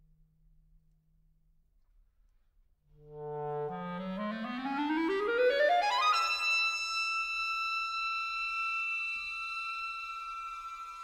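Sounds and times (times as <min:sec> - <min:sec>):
solo clarinet run: 0:03.3 - 0:11.0.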